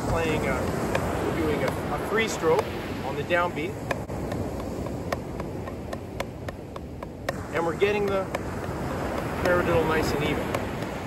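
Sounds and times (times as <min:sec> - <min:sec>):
drumsticks tapping practice pad: 0:00.6 - 0:01.9, 0:03.8 - 0:11.0.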